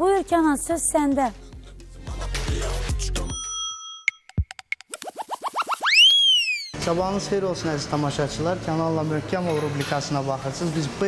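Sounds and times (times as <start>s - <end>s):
cartoon rising boings: 4.8s - 6.8s
cartoon falling drop: 4.9s - 6.8s.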